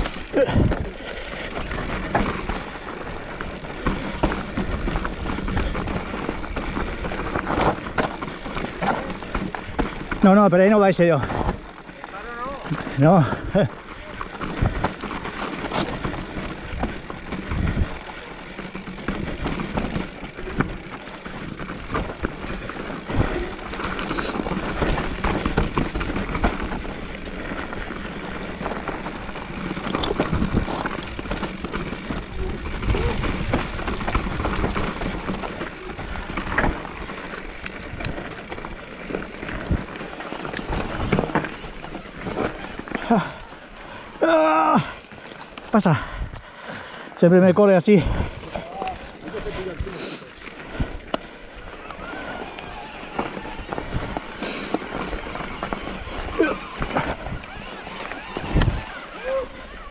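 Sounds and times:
tyres crunching over stones: 0.0 - 46.5, 47.2 - 59.1
bike rattling over bumps: 0.0 - 59.9.

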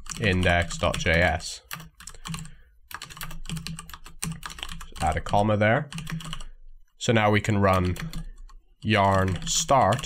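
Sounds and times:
computer keyboard typing: 0.0 - 6.6, 7.6 - 10.0.

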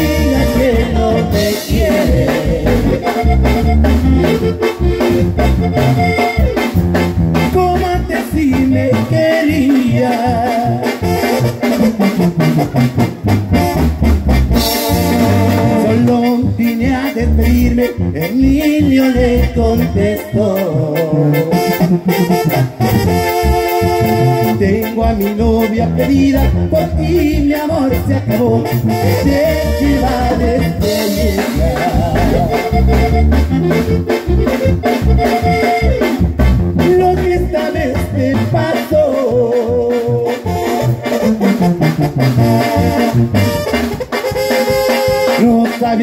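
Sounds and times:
bass and drums: 0.0 - 46.0
live band instrumental: 0.0 - 46.0
saxophone-like lead notes: 0.0 - 46.0.

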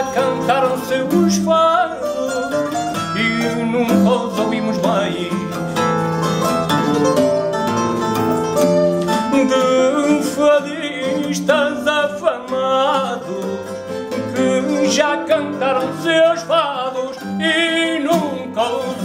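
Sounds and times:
man singing: 0.0 - 5.9, 9.0 - 19.0
guitar accompaniment: 0.0 - 19.0
plucked guitar melody: 0.0 - 19.0.

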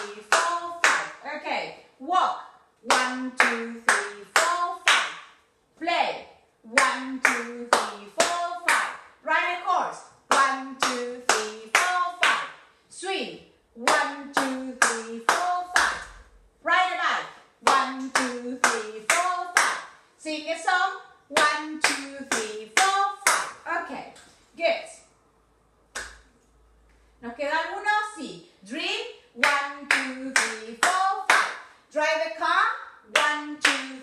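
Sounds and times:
woman counting: 0.0 - 5.2, 5.8 - 25.1, 27.2 - 34.0
hand clapping: 2.9 - 5.4, 25.9 - 26.3, 29.4 - 31.7.

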